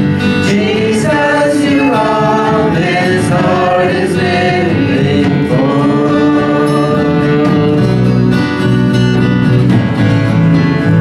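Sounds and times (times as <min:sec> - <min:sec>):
people singing together: 0:00.0 - 0:08.7
light musical accompaniment: 0:00.0 - 0:11.0.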